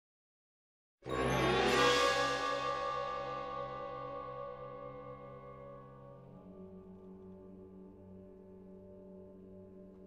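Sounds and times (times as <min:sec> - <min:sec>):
low sustained note: 0:01.4 - 0:10.0.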